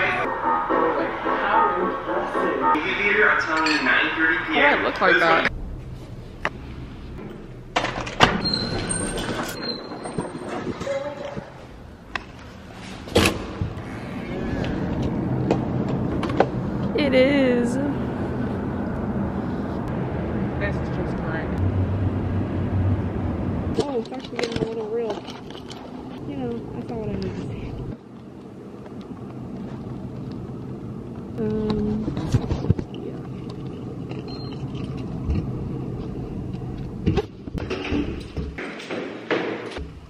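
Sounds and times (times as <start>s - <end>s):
low traffic rumble: 0.0s - 38.6s
distant voices calling out: 13.7s - 15.4s.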